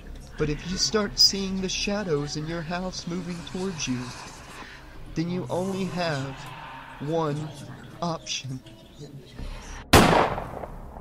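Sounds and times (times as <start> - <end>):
pistol shot: 9.9 - 11.0.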